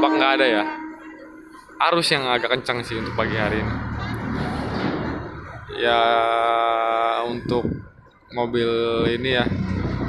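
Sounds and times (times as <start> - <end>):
low background rumble: 2.4 - 6.5.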